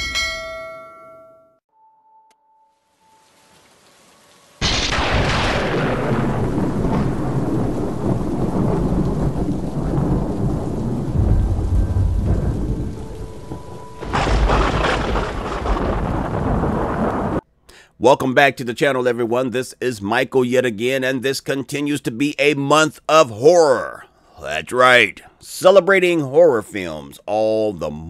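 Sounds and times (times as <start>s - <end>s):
rain falling: 2.8s - 17.4s
rolling thunder rumble: 4.6s - 17.4s
thunderclap: 4.6s - 17.4s.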